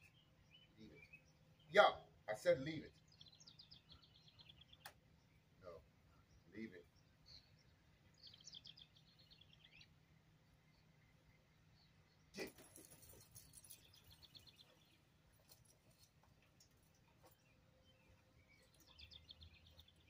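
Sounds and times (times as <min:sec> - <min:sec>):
small bird chirping trills: 0:00.0 - 0:20.0.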